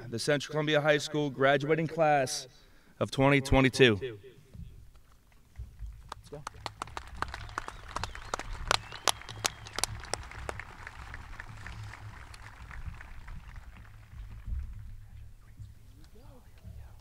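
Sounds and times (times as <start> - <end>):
loud sharp claps close by: 5.9 - 16.2
crowd applause: 6.4 - 15.2.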